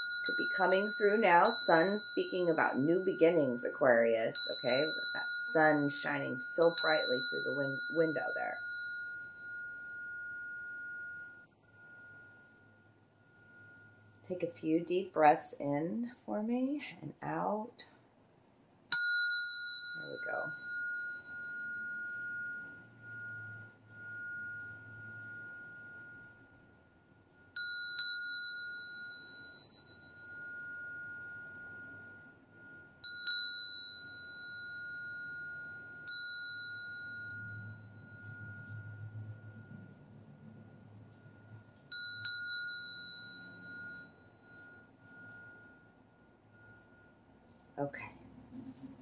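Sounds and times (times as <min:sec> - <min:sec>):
brass hand bell ringing: 0:00.0 - 0:14.2, 0:18.9 - 0:47.2.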